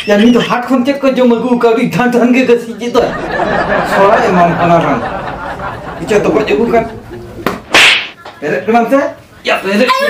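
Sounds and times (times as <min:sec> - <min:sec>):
loud swish: 0:07.4 - 0:08.2.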